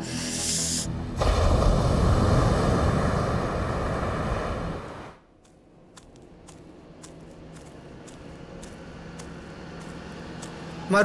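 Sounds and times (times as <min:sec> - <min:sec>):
wind: 0:00.0 - 0:11.0
ocean surf: 0:01.1 - 0:05.2.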